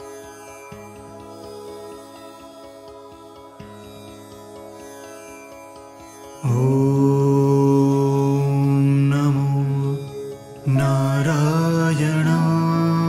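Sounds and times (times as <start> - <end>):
soft sustained drone: 0.0 - 13.0
man chanting in held notes: 6.5 - 13.0.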